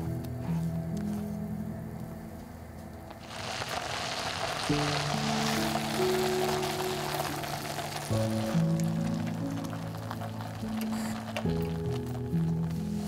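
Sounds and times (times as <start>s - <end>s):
background music: 0.0s - 13.0s
sauce sizzling in frying pan: 3.2s - 12.5s.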